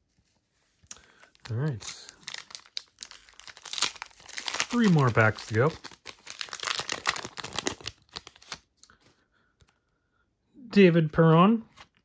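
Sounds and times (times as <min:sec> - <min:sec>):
foil wrapper crinkling and tearing: 0:00.9 - 0:08.7.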